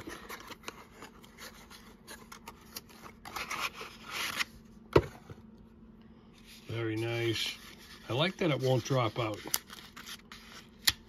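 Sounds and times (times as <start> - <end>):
cardboard rustling and scraping: 0.0 - 5.3, 6.4 - 10.7.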